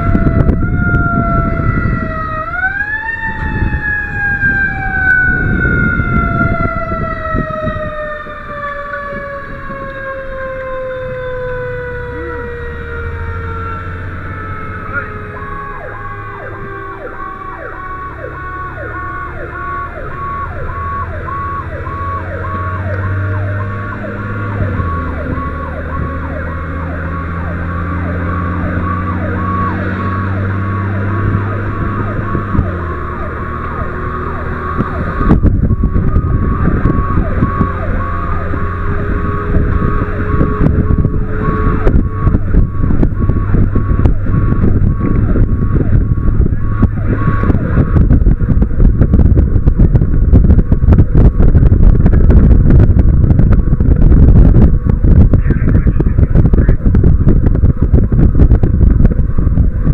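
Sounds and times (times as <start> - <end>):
diesel engine running: 0.0 - 59.9
loud rush of wind noise: 0.0 - 59.9
pulsing siren: 0.0 - 59.9
wailing siren: 0.0 - 59.9.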